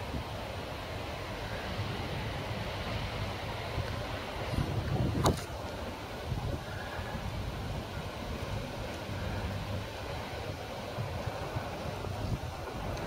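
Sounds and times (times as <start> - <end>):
steady background hum: 0.0 - 13.0
wind rumbling on microphone: 0.0 - 13.0.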